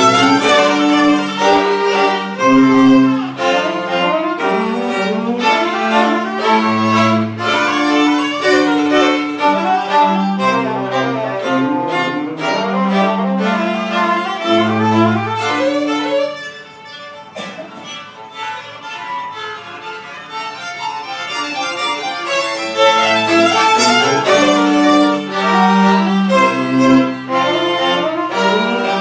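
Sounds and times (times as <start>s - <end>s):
string quartet playing fast passage: 0.0s - 29.0s.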